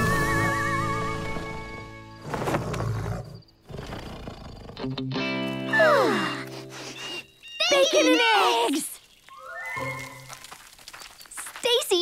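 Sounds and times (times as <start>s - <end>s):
background music: 0.0s - 2.2s.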